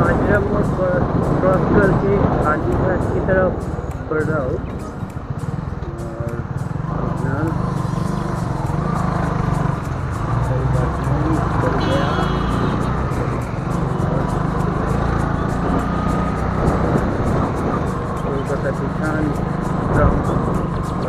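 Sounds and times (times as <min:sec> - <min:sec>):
background music: 0:00.0 - 0:21.0
motorcycle engine and wind rumble: 0:00.0 - 0:21.0.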